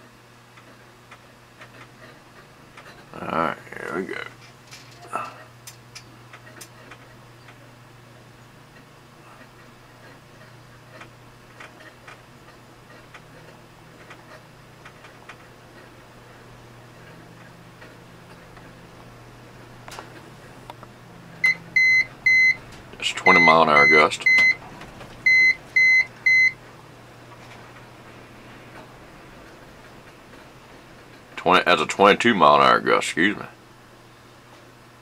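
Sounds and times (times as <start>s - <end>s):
low electrical hum: 0.0s - 35.0s
rising electrical tone: 24.5s - 32.8s.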